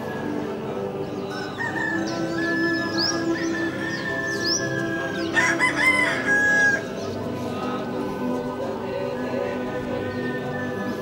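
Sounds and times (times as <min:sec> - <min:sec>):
background music: 0:00.0 - 0:11.0
rooster crowing: 0:03.4 - 0:06.9.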